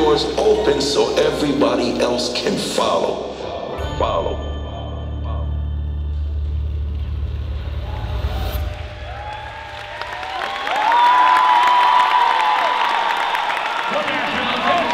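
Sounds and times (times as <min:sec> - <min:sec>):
audience cheering and whooping: 0:07.6 - 0:14.9.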